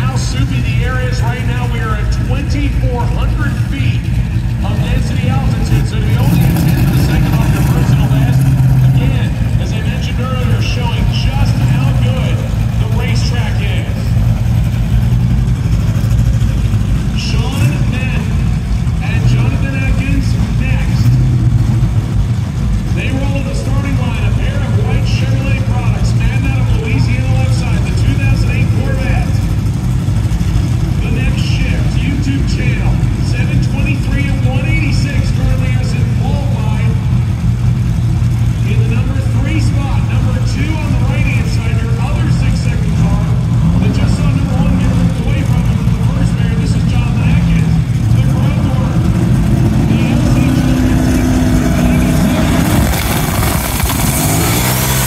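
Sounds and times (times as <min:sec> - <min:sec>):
indistinct voices talking: 0:00.0 - 0:37.4, 0:38.2 - 0:55.0
car engines idling: 0:00.0 - 0:55.0.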